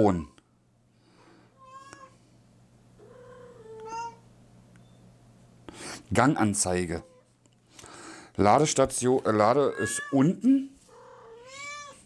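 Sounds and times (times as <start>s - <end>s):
house cat meowing: 10.9s - 12.0s.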